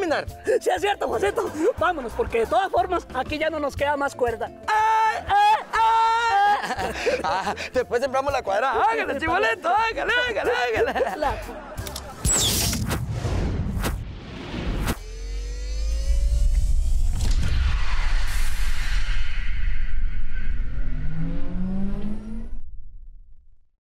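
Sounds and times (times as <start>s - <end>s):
whoosh: 12.3s - 23.6s
rising sweeps: 12.8s - 22.9s.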